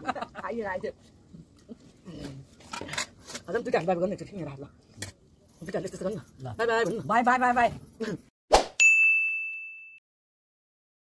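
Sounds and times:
bright chime ding: 8.8s - 10.0s.

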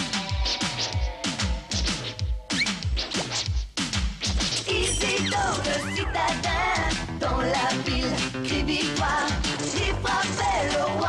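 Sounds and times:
electronic beat with low thuds: 0.0s - 11.0s.

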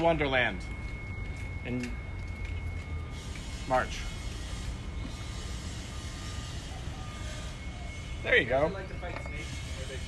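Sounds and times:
faint steady high tone: 0.0s - 10.0s.

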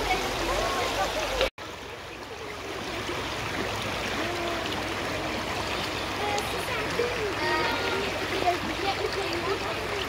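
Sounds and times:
river rushing over stones: 0.0s - 10.0s.

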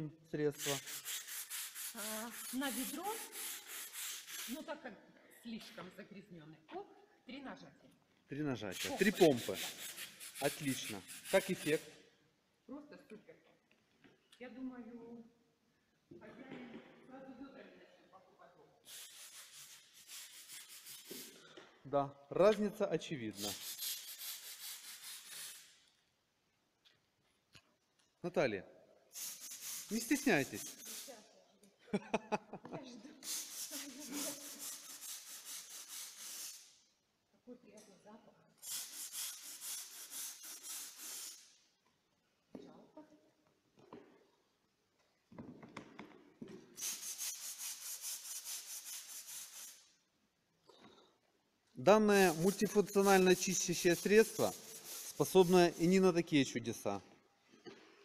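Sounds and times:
scrub brush scrubbing wet stones: 0.7s - 4.6s, 52.0s - 56.1s
scrubbing on a hard floor: 0.7s - 4.6s, 18.9s - 21.4s, 33.2s - 36.6s, 46.8s - 49.8s, 52.1s - 56.0s
brush scrubbing wet paving stones: 52.1s - 56.0s.

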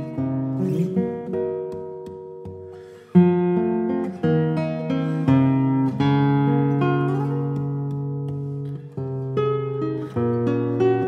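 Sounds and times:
fingerstyle classical guitar: 0.0s - 11.0s.

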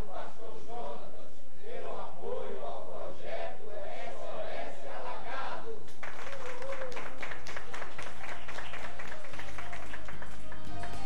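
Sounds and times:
people clapping: 5.9s - 11.0s.

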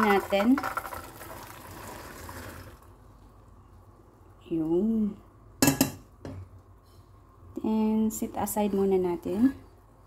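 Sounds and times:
liquid pouring into a colander: 0.0s - 2.9s.

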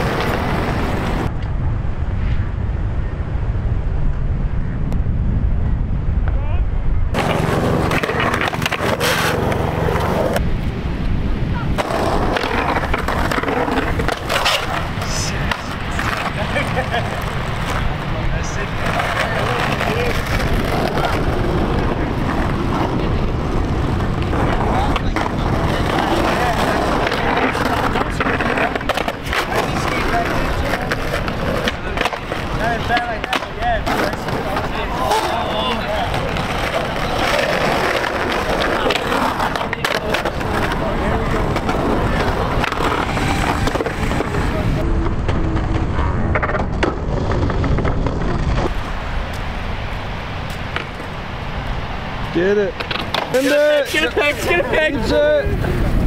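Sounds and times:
skateboard trucks grinding on curb: 0.0s - 1.3s, 7.2s - 10.4s, 11.7s - 48.9s, 52.4s - 56.0s
skateboards clacking on pavement: 0.0s - 1.3s, 7.2s - 10.5s, 11.7s - 49.4s, 50.4s - 51.1s, 52.2s - 56.0s
skateboards rolling on concrete: 0.0s - 2.6s, 7.1s - 56.0s.

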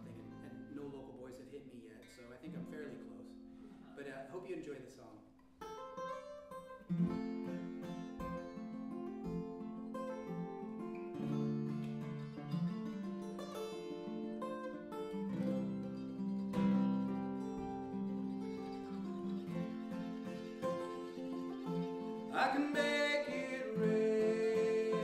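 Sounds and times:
acoustic guitar picking: 0.0s - 4.4s, 5.4s - 25.0s.

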